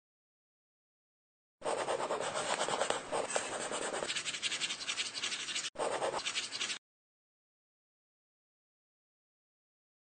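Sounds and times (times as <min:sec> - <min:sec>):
marker scratching on whiteboard: 0:01.6 - 0:06.8.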